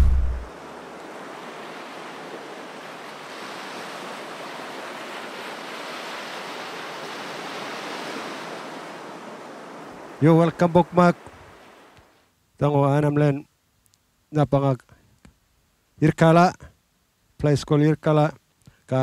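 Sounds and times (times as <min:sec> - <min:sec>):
short low boom: 0:00.0 - 0:00.5
ocean surf: 0:00.0 - 0:12.2.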